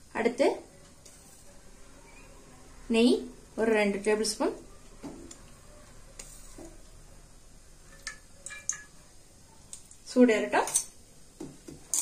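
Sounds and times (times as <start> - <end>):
spoon tapping metal pot: 7.9 - 9.0.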